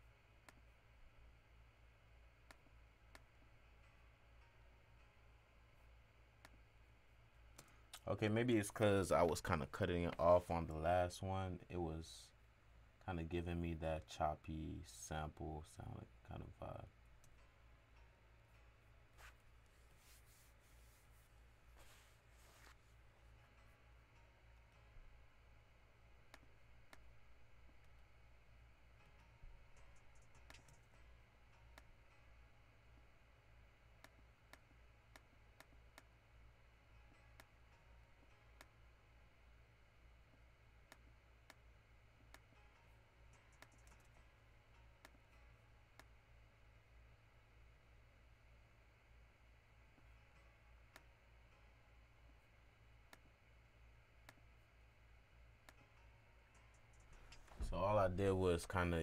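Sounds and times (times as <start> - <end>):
low electrical hum: 0.0 - 59.0
computer mouse clicks: 30.0 - 30.9, 43.4 - 44.2.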